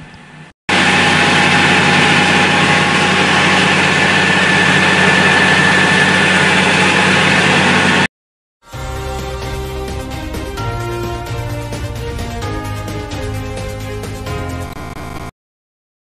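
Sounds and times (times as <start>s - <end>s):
pressure washer motor humming: 0.1s - 8.1s, 9.0s - 15.3s.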